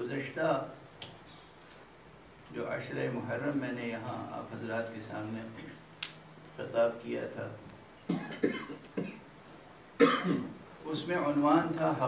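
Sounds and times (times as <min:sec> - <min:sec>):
man coughing: 0:08.1 - 0:09.2, 0:10.0 - 0:10.6.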